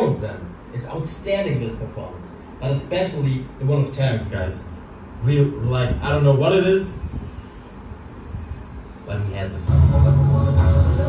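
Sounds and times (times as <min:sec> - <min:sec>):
low steady rumbling: 0:00.0 - 0:11.0.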